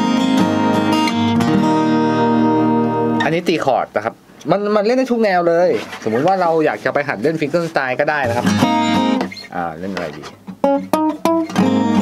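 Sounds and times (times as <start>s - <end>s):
acoustic guitar chord ringing: 0.0s - 3.3s, 8.2s - 9.5s, 10.5s - 12.0s
man talking: 3.2s - 8.7s, 9.3s - 10.4s.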